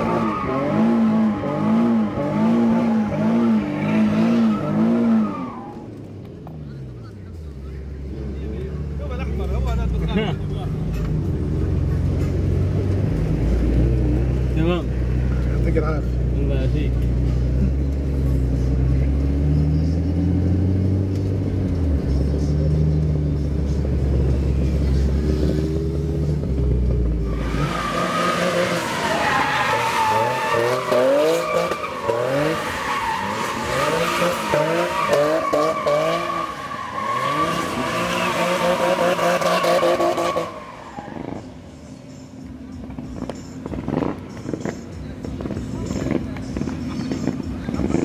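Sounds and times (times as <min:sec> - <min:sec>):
car engine revving: 0:00.0 - 0:42.0, 0:42.7 - 0:48.0
tyre squeal: 0:27.2 - 0:41.6.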